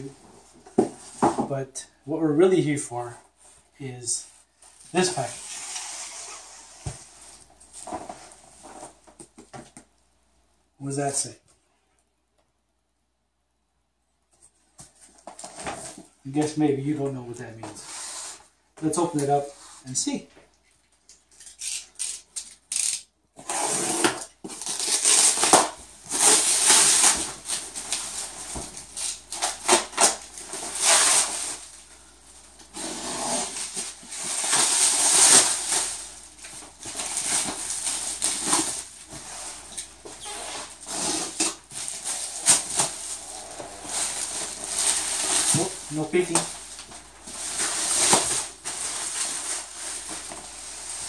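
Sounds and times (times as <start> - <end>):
plastic bag crinkling and tearing: 21.3 - 31.8, 32.7 - 51.0.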